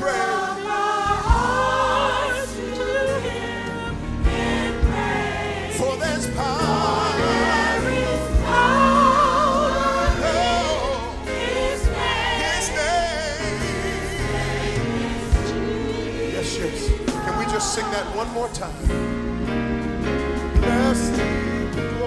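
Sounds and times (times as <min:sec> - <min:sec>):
group singing worship song: 0:00.0 - 0:22.0
low musical accompaniment: 0:00.0 - 0:22.0.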